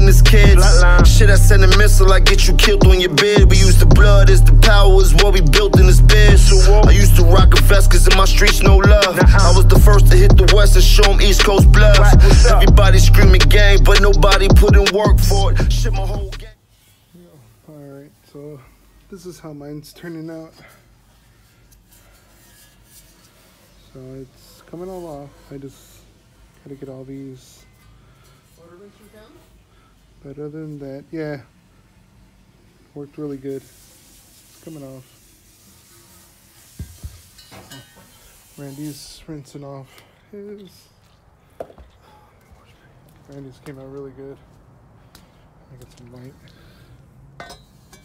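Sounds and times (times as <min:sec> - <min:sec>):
faint background noise: 0:16.5 - 0:48.0
metal exhaust header rubbing: 0:21.2 - 0:27.0.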